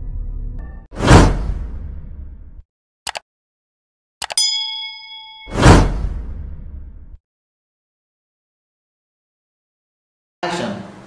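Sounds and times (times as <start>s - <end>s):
bell ding: 4.4s - 5.8s
loud whoosh: 5.5s - 7.2s.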